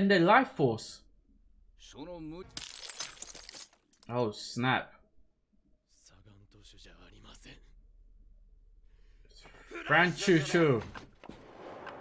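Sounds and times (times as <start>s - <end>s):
crashing and shattering: 2.5s - 3.9s.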